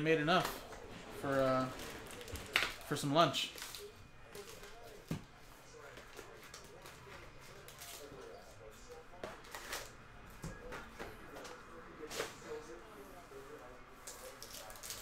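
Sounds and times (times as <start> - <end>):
foil wrapper crinkling: 1.6 - 5.0, 14.0 - 15.0.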